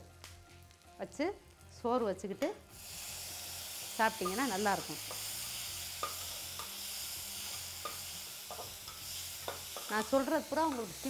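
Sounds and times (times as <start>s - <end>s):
vegetables sizzling in hot oil: 1.2s - 11.0s.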